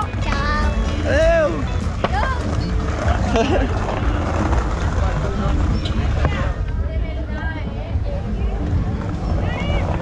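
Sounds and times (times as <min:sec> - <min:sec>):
people talking: 0:04.8 - 0:10.0.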